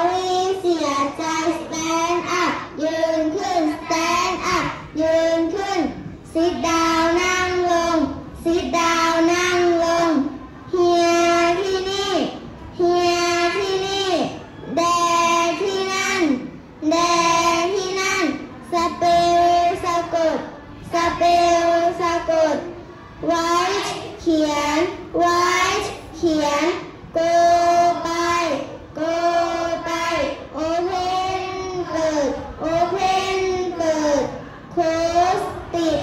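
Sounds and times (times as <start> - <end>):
children chanting in unison: 0.0 - 36.0.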